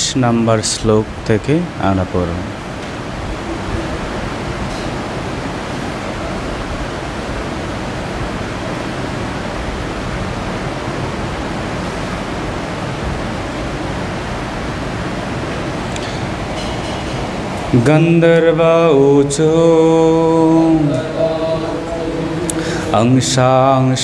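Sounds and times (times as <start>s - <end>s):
steady rushing noise: 0.0s - 24.0s.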